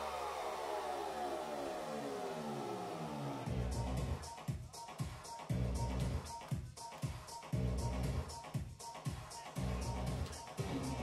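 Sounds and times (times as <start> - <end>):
synthesizer tone gliding down: 0.0 - 4.2.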